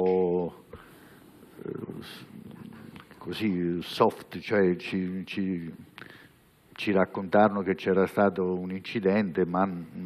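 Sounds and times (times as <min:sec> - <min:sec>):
man breathing: 0:00.7 - 0:01.6, 0:06.0 - 0:06.5
man murmuring hesitation: 0:01.6 - 0:03.2.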